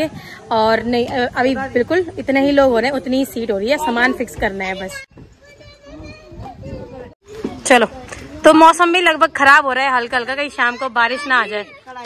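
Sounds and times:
people talking: 0:00.0 - 0:12.0
child's voice: 0:03.8 - 0:07.6.

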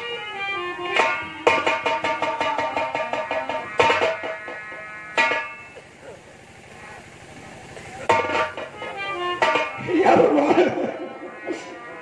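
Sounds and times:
faint voices: 0:05.7 - 0:12.0.

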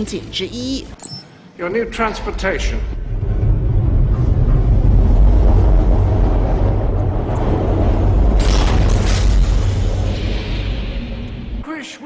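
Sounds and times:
deep steady rumble: 0:02.3 - 0:11.6.

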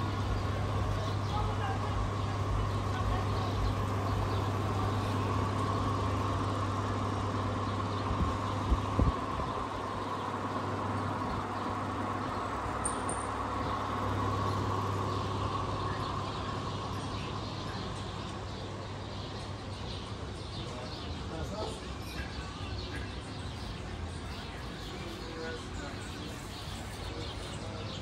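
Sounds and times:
electric fan hum: 0:00.0 - 0:28.0.

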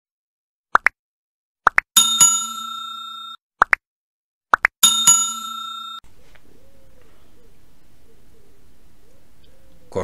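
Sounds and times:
metallic bell-like ring: 0:02.0 - 0:03.4, 0:04.8 - 0:06.0.

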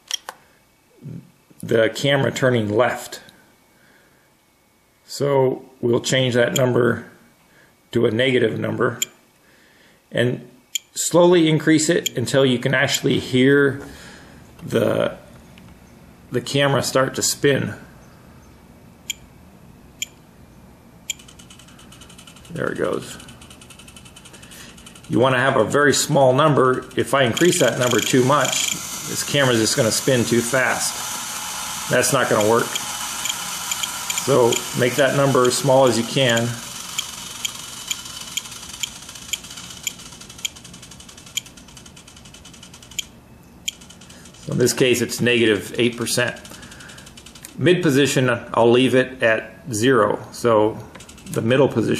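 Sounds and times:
servo motor ticking whir: 0:21.1 - 0:25.7, 0:26.3 - 0:44.7, 0:45.9 - 0:47.6, 0:51.0 - 0:51.4
short high beeps: 0:27.4 - 0:28.8.

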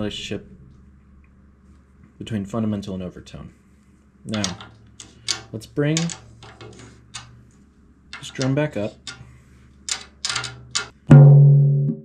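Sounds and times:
drum struck ringing note: 0:11.1 - 0:12.0.

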